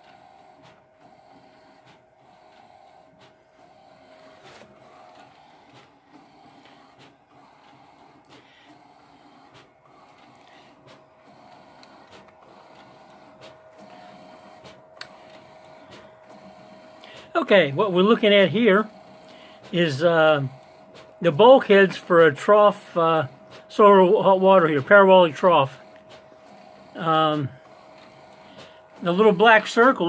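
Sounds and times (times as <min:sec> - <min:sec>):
printer clicks: 0:00.0 - 0:30.0
printer mechanism whine: 0:00.0 - 0:30.0.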